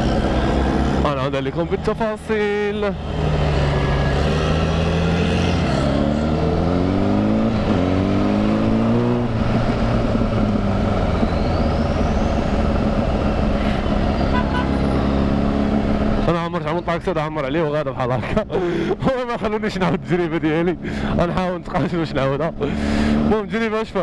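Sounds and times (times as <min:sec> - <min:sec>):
motorcycle engine revving: 0:00.0 - 0:16.3
road and wind noise: 0:00.0 - 0:24.0.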